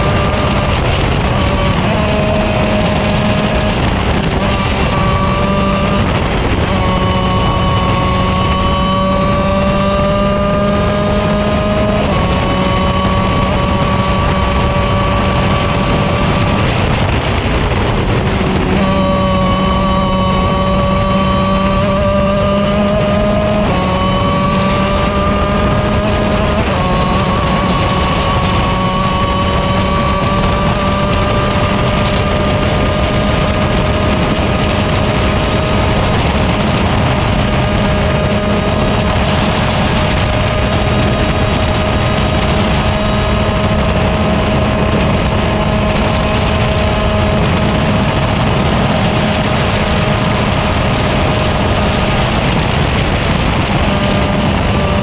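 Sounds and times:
kart engine running hard: 0:00.0 - 0:55.0.

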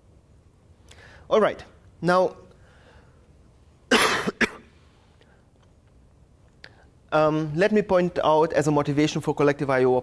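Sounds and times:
man coughing: 0:03.9 - 0:04.8.

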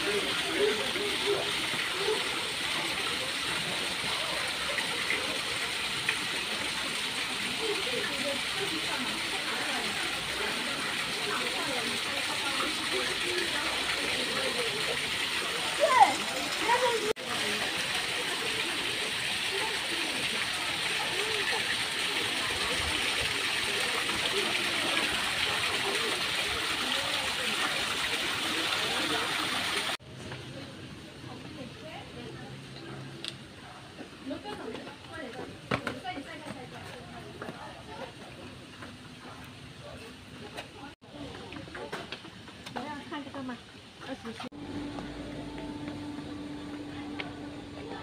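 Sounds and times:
fountain water falling into pool: 0:00.0 - 0:48.0.

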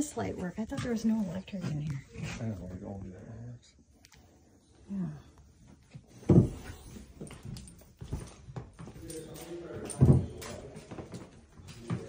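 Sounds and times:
quiet knocks and shuffling: 0:05.4 - 0:12.0.

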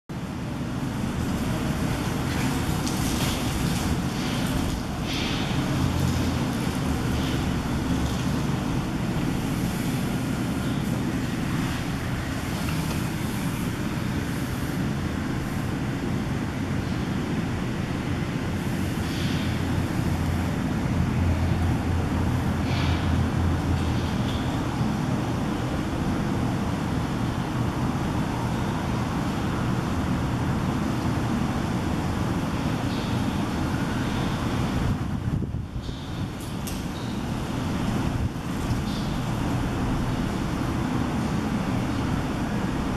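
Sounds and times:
low rumbling background noise: 0:00.1 - 0:42.9.

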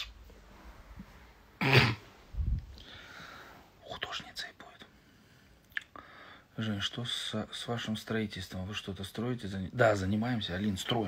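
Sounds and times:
man whispering: 0:03.7 - 0:11.0.

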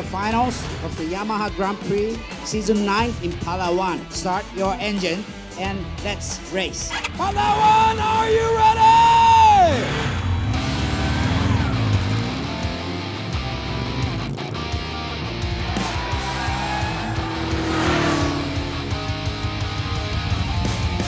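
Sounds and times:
racing motorcycle engines revving: 0:00.0 - 0:03.4, 0:06.7 - 0:21.0
background music: 0:00.0 - 0:21.0.

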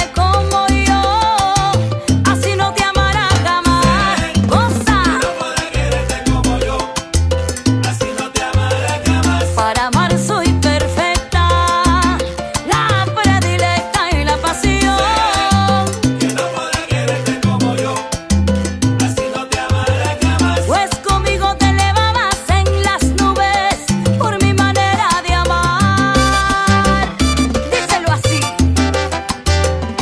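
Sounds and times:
salsa band music: 0:00.0 - 0:30.0.

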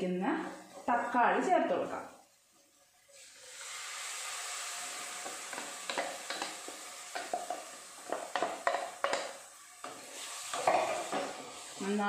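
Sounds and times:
sauce sizzling in oil: 0:00.0 - 0:12.0
wooden spatula scraping a pan: 0:05.1 - 0:12.0.

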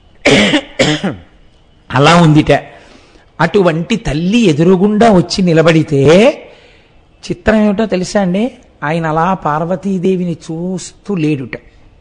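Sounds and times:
man coughing: 0:00.2 - 0:01.3.

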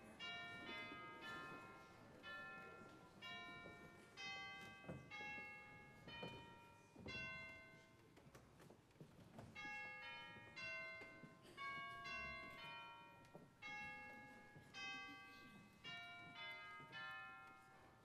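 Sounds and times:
bells playing a slow tune: 0:00.0 - 0:08.2, 0:09.5 - 0:18.0.

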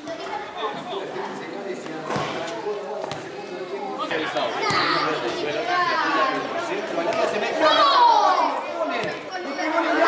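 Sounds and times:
crowd shouting and chattering: 0:00.0 - 0:10.0
loud shout: 0:07.6 - 0:08.8.

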